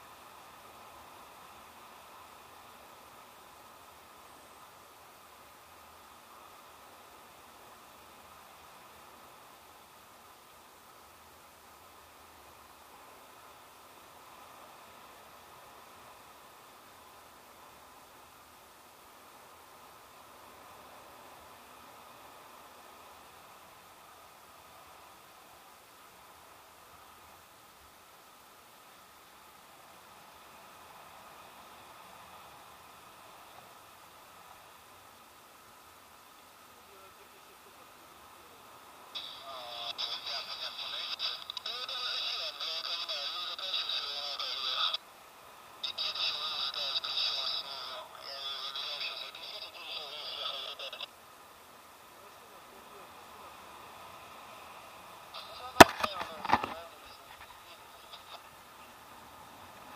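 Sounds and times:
faint steady hiss: 0.0s - 59.9s.

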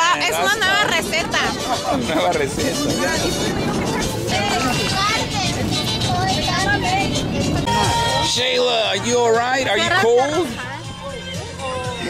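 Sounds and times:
music playing: 0.0s - 12.0s
people chattering: 0.0s - 12.0s
held musical tone: 0.7s - 12.0s.

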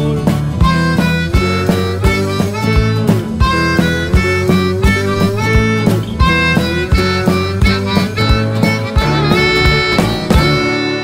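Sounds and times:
acoustic guitar: 0.0s - 11.0s
harmonica melody: 0.6s - 11.0s
drum strokes: 3.2s - 11.0s.

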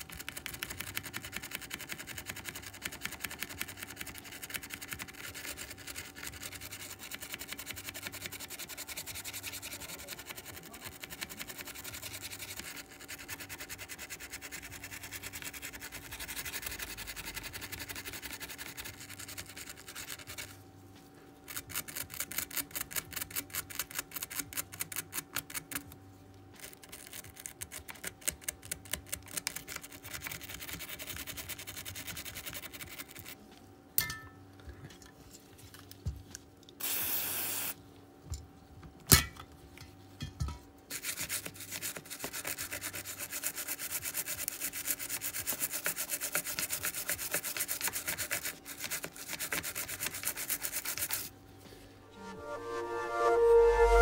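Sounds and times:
brush scrubbing circuit board: 0.0s - 20.6s, 40.9s - 51.3s.

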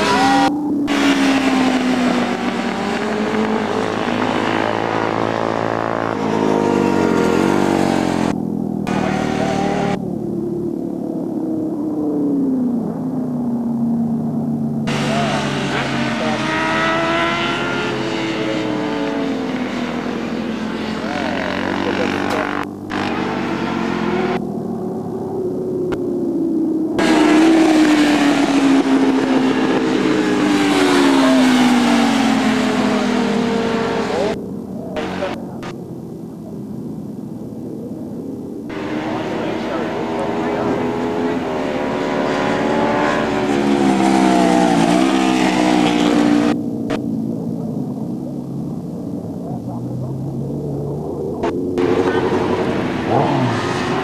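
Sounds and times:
motorcycle engines at high revs: 0.0s - 54.0s.

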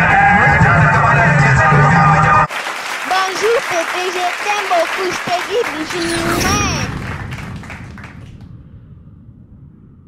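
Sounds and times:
scattered clapping: 2.1s - 8.5s
faint low rumble: 6.2s - 10.0s.

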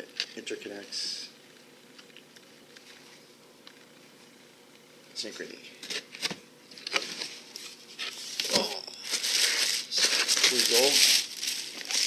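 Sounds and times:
packaging rustling and crinkling: 6.7s - 12.0s.

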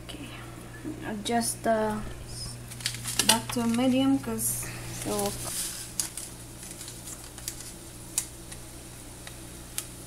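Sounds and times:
low hum: 0.4s - 6.6s.

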